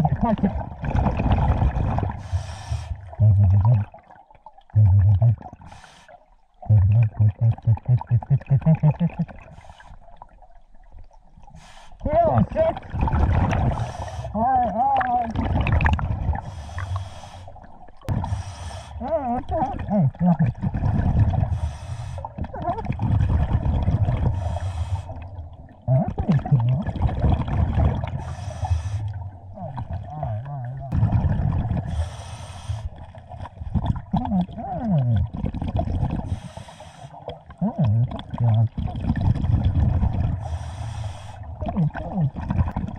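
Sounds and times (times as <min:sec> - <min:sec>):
bubbles gurgling underwater: 0:00.0 - 0:05.7, 0:06.6 - 0:09.6, 0:12.3 - 0:14.1, 0:14.8 - 0:16.8, 0:19.3 - 0:21.6, 0:22.2 - 0:28.4, 0:29.0 - 0:32.1, 0:32.9 - 0:36.4, 0:37.2 - 0:40.6, 0:41.4 - 0:42.9
regulator inhale hiss: 0:02.2 - 0:02.9, 0:16.5 - 0:17.6, 0:18.2 - 0:19.0, 0:28.2 - 0:29.1, 0:31.9 - 0:32.9, 0:36.3 - 0:37.2, 0:40.4 - 0:41.5.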